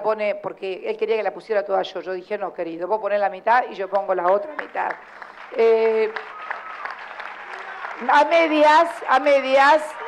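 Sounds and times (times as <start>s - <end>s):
audience applauding: 4.4s - 10.0s.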